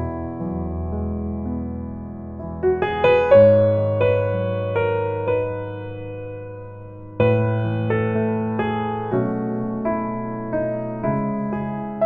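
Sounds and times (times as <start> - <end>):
slow solo piano: 0.0 - 12.0.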